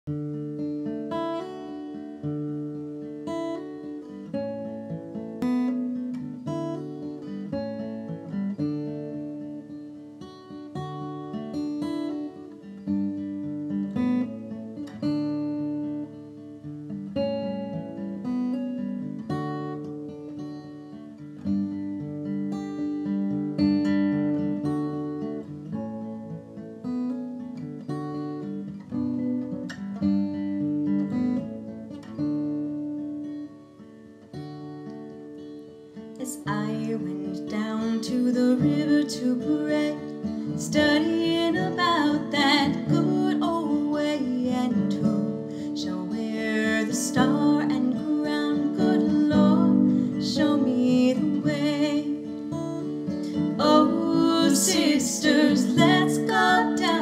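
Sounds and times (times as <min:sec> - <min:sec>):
acoustic guitar plucked: 0:00.0 - 0:57.0.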